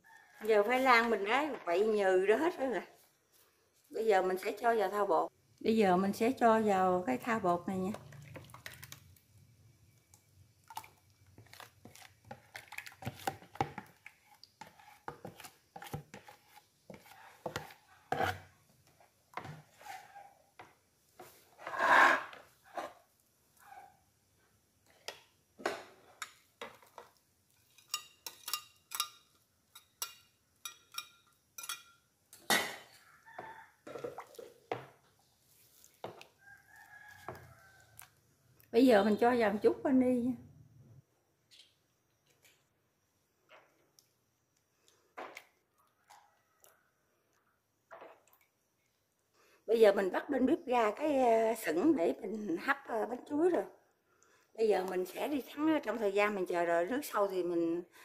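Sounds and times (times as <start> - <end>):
metal ladle stirring batter: 7.1 - 9.2, 10.0 - 22.6, 26.0 - 31.9, 33.3 - 38.1.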